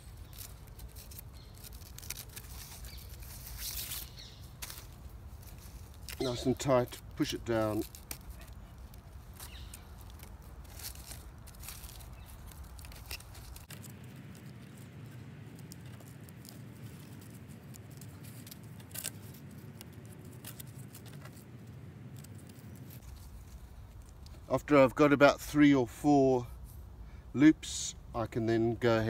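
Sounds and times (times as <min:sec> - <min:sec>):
hands working a rope lashing: 0:00.0 - 0:24.4
dry leaves crackling: 0:00.0 - 0:24.5.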